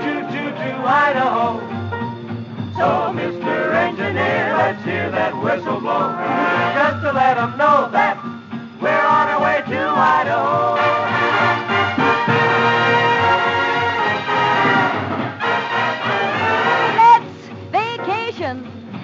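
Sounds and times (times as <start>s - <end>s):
swing dance orchestra: 0.0s - 18.8s.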